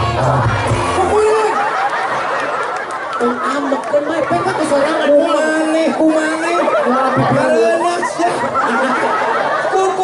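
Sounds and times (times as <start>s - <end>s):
crowd chatter: 0.0s - 10.0s
man talking over public address: 0.8s - 1.8s, 3.2s - 10.0s.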